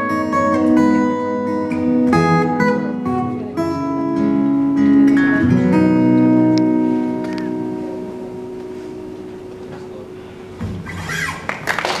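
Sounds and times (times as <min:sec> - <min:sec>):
acoustic guitar notes ringing: 0:00.0 - 0:11.5
audience clapping: 0:11.3 - 0:12.0.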